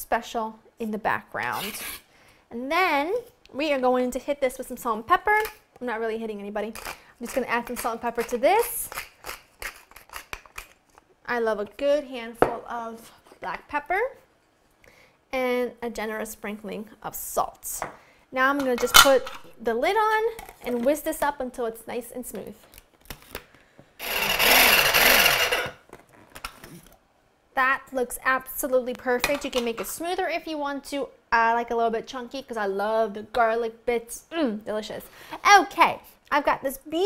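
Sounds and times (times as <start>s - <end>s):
pepper mill grinding: 6.7s - 10.8s, 24.0s - 25.8s
mini food processor running: 24.0s - 25.6s.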